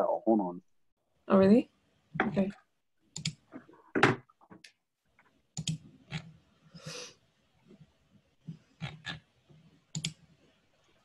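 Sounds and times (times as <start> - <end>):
keyboard and mouse clicks: 3.1 - 3.7, 5.6 - 6.3, 9.9 - 10.3.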